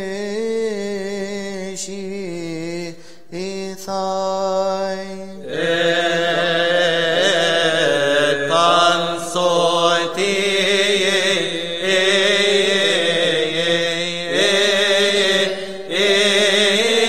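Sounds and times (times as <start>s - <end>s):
men singing a chant: 0.0s - 17.0s.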